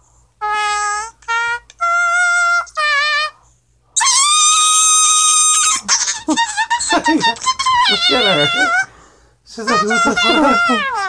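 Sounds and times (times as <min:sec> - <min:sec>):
auto-tuned voice: 0:06.2 - 0:08.8, 0:09.5 - 0:11.0.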